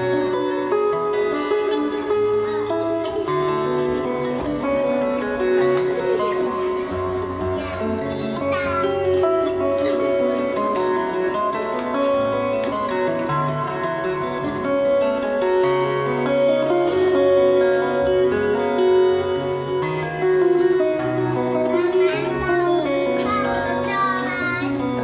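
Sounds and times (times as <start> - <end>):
fingerstyle acoustic guitar: 0.0 - 25.0.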